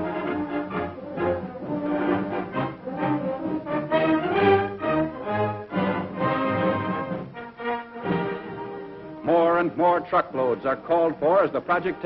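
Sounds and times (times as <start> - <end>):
orchestral music with brass: 0.0 - 12.0.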